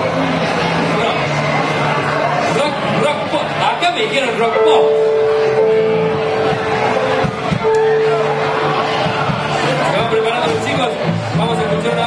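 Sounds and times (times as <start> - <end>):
live rock band: 4.9 - 10.1.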